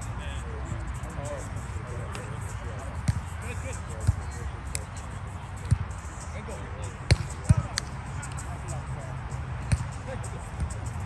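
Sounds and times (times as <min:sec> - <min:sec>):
volleyball struck by hand: 0:05.6 - 0:05.9, 0:07.1 - 0:08.4, 0:09.6 - 0:10.0.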